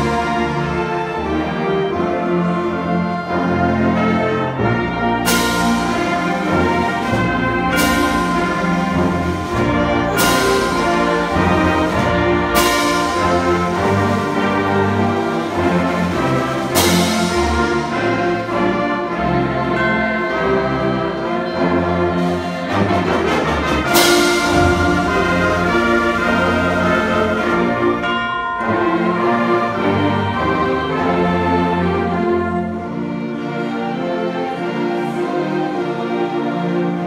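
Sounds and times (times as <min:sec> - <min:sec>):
concert band playing: 0:00.0 - 0:37.0
loud accented band hits: 0:22.2 - 0:31.1.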